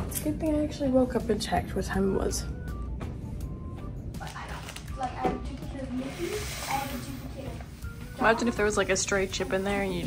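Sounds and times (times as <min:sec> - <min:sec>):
air sucked from plastic bag: 0:06.0 - 0:07.2.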